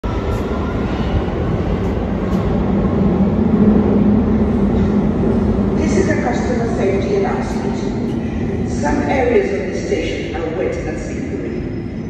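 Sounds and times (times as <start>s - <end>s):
underground train rumbling: 0.0s - 12.0s.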